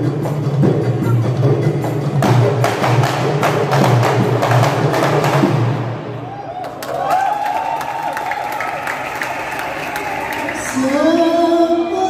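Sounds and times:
hand drums interlocking rhythm: 0.0 - 5.9.

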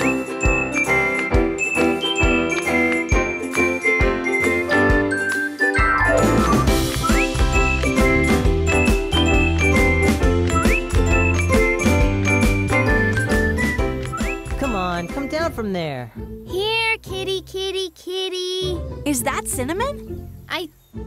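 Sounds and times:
upbeat cartoon theme music: 0.0 - 21.0.

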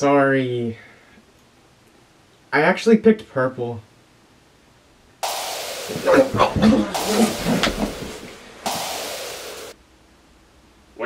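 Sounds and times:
electric shock static hiss: 5.2 - 9.8.

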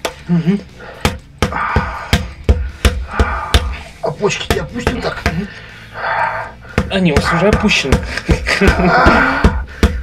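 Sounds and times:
wooden mallet knocking on wood: 1.0 - 5.5, 6.7 - 10.0.

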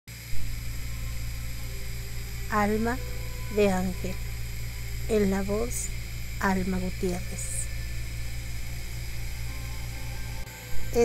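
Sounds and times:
low electrical hum: 0.1 - 11.0.

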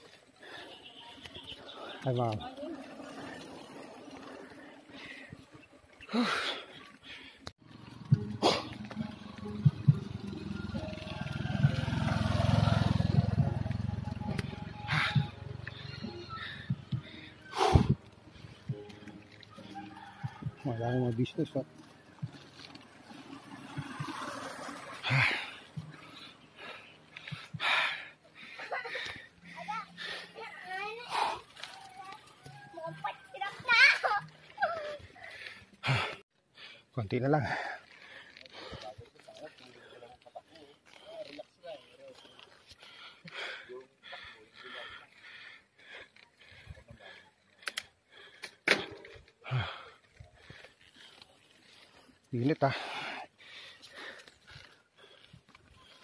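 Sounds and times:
small motorcycle engine passing: 1.7 - 5.0, 7.6 - 33.6
sharp clicks: 47.6 - 48.8.

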